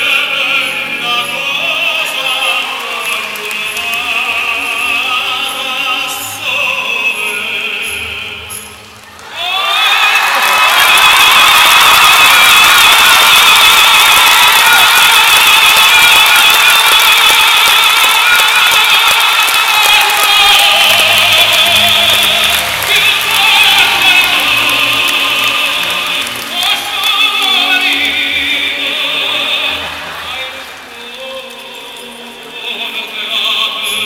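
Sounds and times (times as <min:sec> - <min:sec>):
operatic singing with orchestra: 0:00.0 - 0:34.0.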